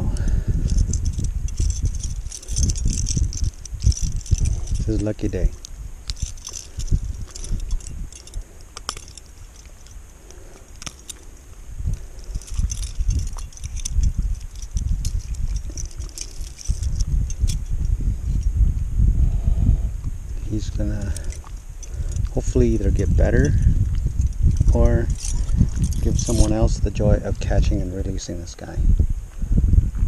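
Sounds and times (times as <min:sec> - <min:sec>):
metal chain and pliers clinking: 0:00.0 - 0:18.5, 0:20.5 - 0:28.7
low rumble: 0:00.0 - 0:28.0.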